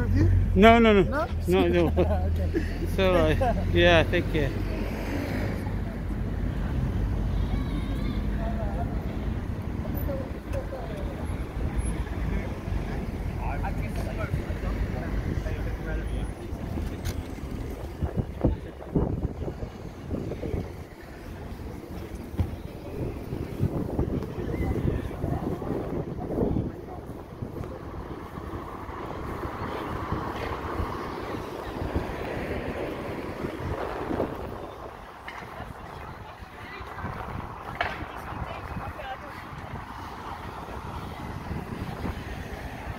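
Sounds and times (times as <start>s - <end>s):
car passing: 0.0s - 42.9s
street traffic: 0.0s - 42.9s
wind rumbling on microphone: 11.3s - 42.9s.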